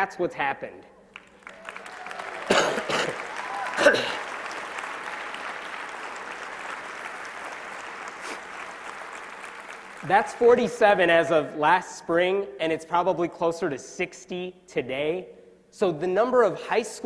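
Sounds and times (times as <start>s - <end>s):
audience applauding and cheering: 1.1s - 11.1s.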